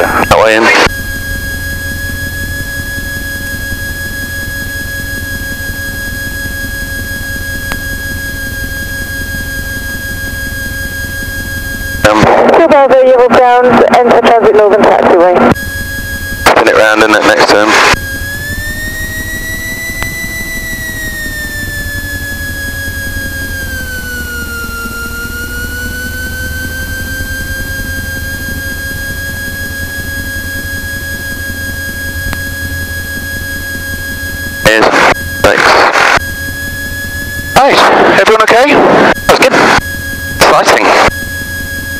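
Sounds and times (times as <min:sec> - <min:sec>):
high engine whine: 0:00.0 - 0:41.9
light aircraft engine drone: 0:00.0 - 0:41.9.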